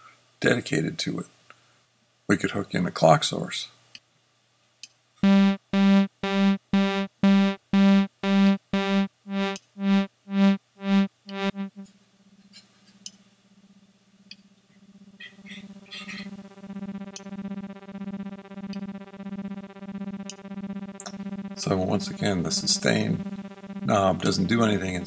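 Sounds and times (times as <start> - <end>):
buzzy synthesizer note: 5.2 - 11.9, 15.3 - 25.0
pulsing synthesizer drone: 5.2 - 11.9, 15.3 - 25.0.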